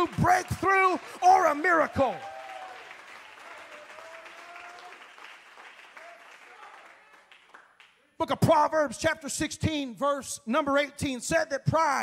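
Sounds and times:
crowd applauding: 0.0 - 8.0.

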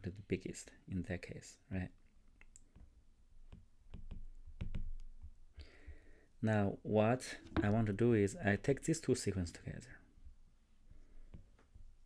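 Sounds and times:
soft breath: 5.6 - 6.4
stylus tapping glass screen: 7.4 - 8.0.

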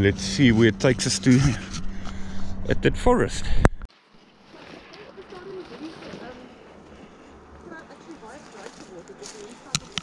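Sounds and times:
rustling through shrubs: 3.9 - 10.0
footsteps: 4.5 - 10.0.

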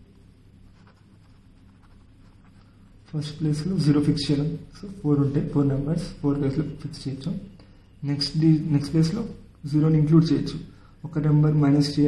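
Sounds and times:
low steady hum: 0.0 - 12.0
pen scratching on paper: 0.6 - 3.4.

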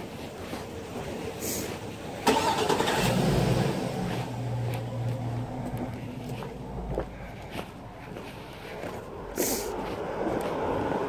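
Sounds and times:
car engine starting: 0.7 - 7.2.

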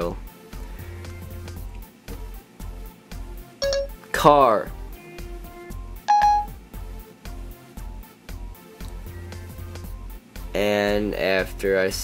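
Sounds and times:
background music with steady beat: 0.0 - 12.0
short electronic beep: 3.6 - 3.9, 6.1 - 6.6.

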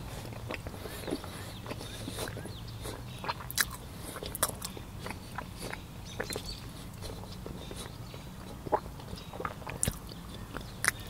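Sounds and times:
man chewing with crunches: 0.0 - 11.0.

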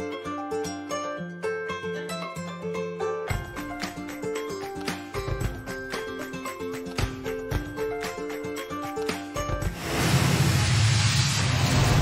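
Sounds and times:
loud rushing whoosh: 9.7 - 12.0.

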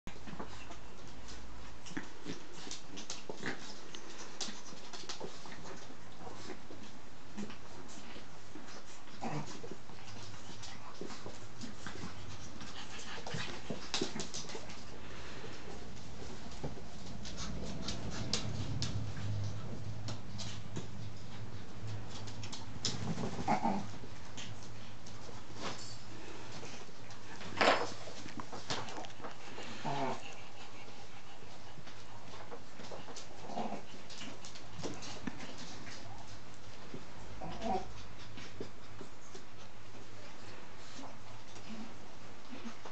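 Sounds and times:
dogs scuffling: 0.1 - 42.9
paws clicking on floor: 0.1 - 42.9.

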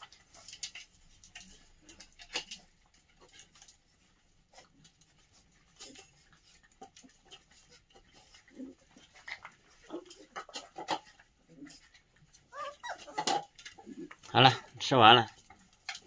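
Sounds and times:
puppies chewing kibble: 0.0 - 16.0
puppy whimper: 11.4 - 14.1.

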